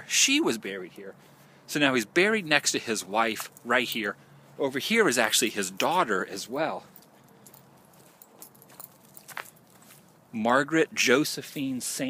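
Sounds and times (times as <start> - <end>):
light rustles: 5.2 - 10.3.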